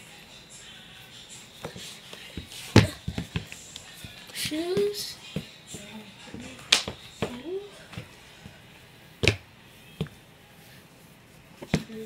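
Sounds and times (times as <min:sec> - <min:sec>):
sneaker stamping on hardwood floor: 0:02.4 - 0:07.4, 0:09.2 - 0:10.1.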